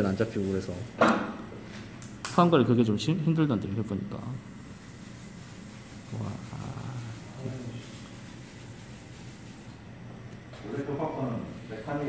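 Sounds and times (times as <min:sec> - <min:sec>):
room noise: 0:00.0 - 0:12.0
person murmuring: 0:06.1 - 0:07.4.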